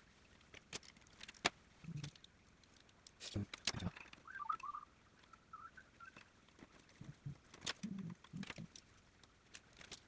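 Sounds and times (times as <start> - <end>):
plastic parts clicking: 0.4 - 4.3, 6.1 - 10.0
faint chirping: 3.8 - 6.4.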